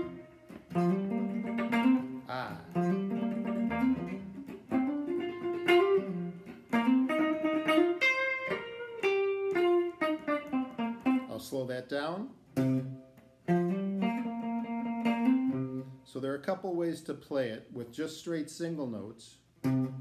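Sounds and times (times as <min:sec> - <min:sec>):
guitar playing blues riff: 0:00.0 - 0:16.9, 0:19.6 - 0:20.0.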